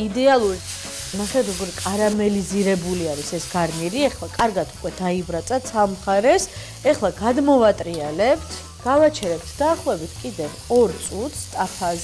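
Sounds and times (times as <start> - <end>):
steak sizzling in a pan: 0.2 - 12.0
woman talking: 1.2 - 12.0.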